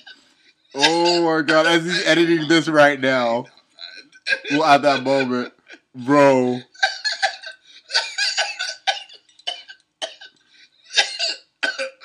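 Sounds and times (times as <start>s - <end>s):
man laughing wheezily: 0.8s - 3.3s, 4.4s - 5.9s.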